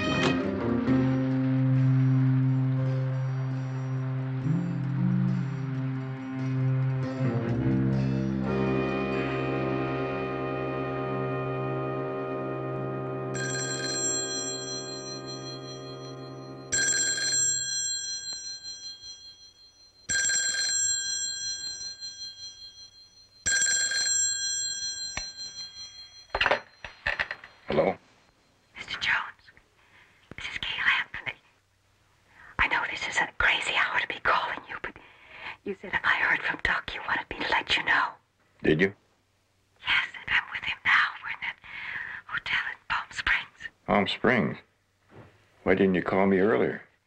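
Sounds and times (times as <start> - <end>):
telephone bell ringing: 13.3 - 27.7
whispered voice: 28.8 - 29.6, 30.3 - 31.5, 32.6 - 35.0, 35.7 - 38.2, 39.8 - 41.6, 42.3 - 43.7.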